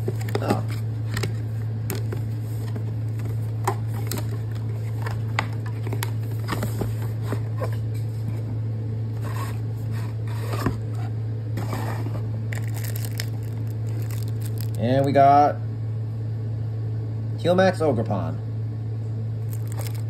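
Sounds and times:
steady low hum: 0.0s - 20.0s
plastic wrap crinkling and tearing: 12.5s - 15.1s, 19.5s - 20.0s.

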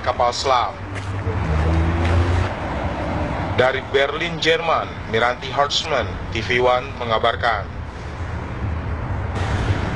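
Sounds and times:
low road traffic rumble: 0.0s - 9.9s.

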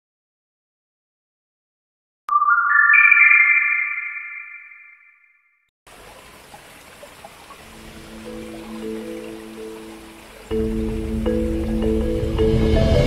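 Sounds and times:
electronic chime rising chord: 2.3s - 5.1s
small waterfall rushing: 5.9s - 12.6s.

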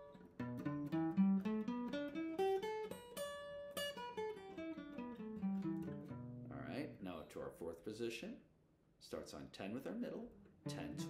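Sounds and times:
acoustic guitar picked notes: 0.0s - 7.0s, 10.5s - 11.0s.

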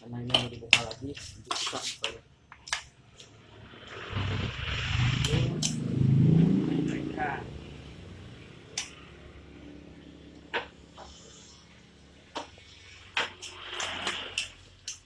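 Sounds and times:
low rumble: 3.3s - 9.5s.

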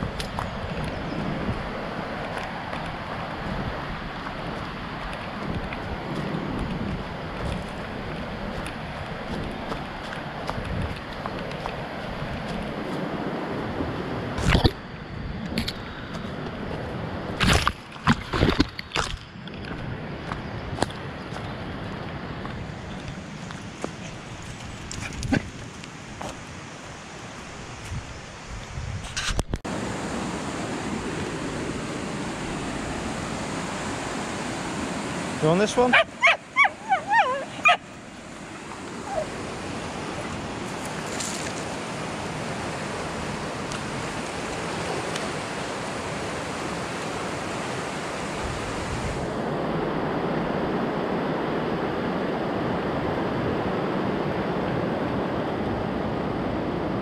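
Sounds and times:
stream rushing over rocks: 0.0s - 15.0s, 29.7s - 51.3s.

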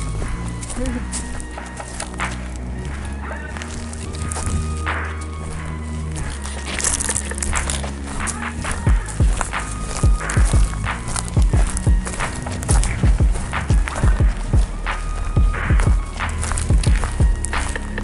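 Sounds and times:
background music with held notes: 0.0s - 18.0s
footsteps on dirt trail: 0.0s - 18.0s.

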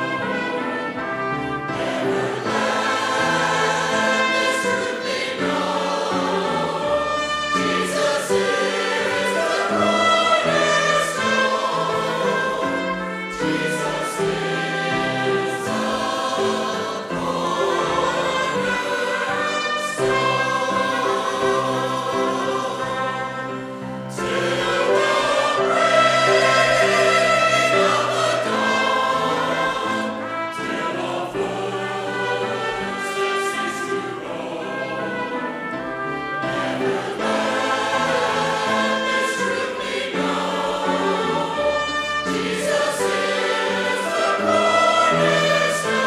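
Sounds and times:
mixed choir singing: 0.0s - 46.0s
piano accompaniment: 0.0s - 46.0s.

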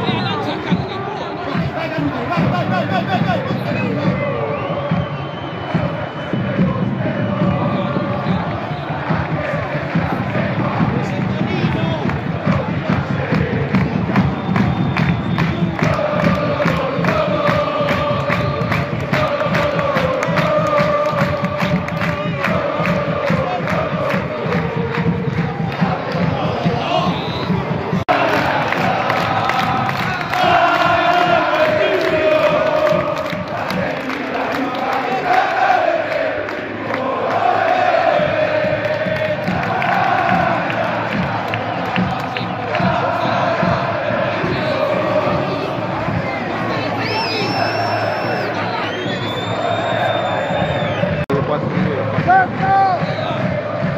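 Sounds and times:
drum beat: 0.0s - 48.6s, 49.6s - 53.9s
crowd chanting: 0.0s - 53.9s.

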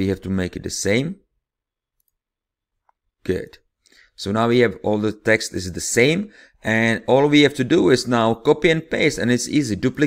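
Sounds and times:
man speaking: 0.0s - 1.3s, 3.2s - 10.0s.

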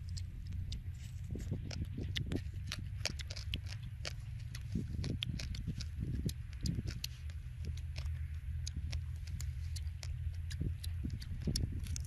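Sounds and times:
light clicks and ticks: 0.0s - 12.0s
wind rumbling on microphone: 0.0s - 12.0s.

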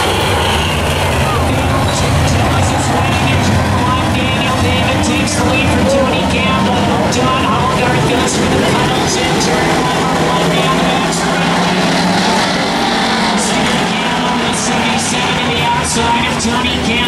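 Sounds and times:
race car engines running: 0.0s - 17.0s.

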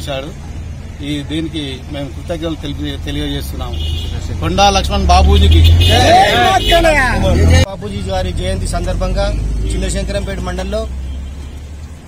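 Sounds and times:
men talking outdoors: 0.0s - 11.5s
street traffic rumble: 0.0s - 12.0s.

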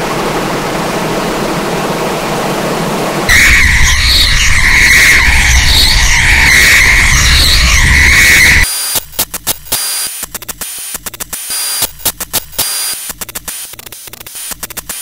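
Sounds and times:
low rumble: 3.3s - 8.6s
loud distorted squeal: 3.3s - 9.1s
hissing noise: 3.3s - 11.0s.

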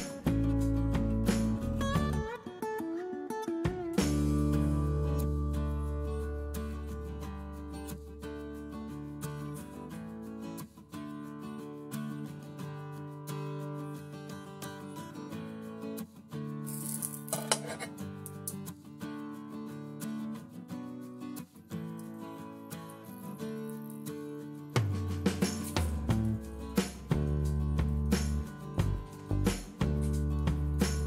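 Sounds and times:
plucked acoustic guitar music: 0.0s - 31.0s.

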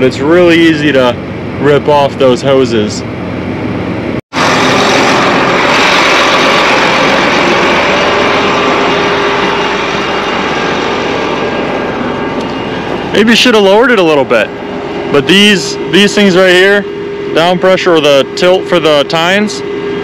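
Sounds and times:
tractor engine and machinery: 0.0s - 20.0s.

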